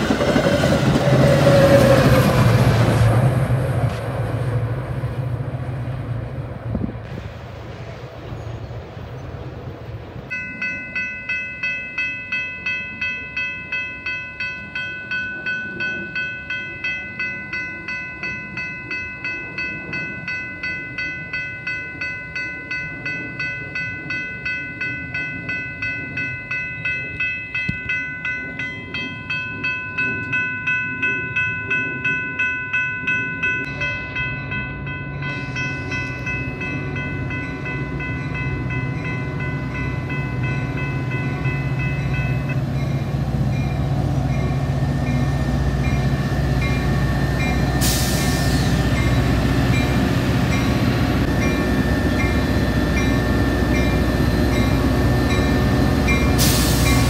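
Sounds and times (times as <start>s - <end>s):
crossing warning bells ringing: 0.0s - 6.9s, 9.8s - 57.0s
diesel locomotive rumble: 0.0s - 57.0s.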